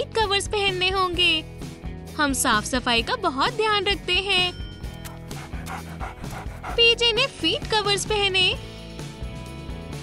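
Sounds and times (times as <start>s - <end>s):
background music: 0.0s - 10.0s
dog panting: 4.9s - 7.4s.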